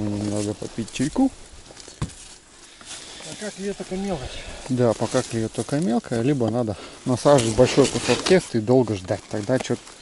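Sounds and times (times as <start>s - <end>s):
faint outdoor background: 0.0s - 10.0s
person talking: 3.2s - 9.8s.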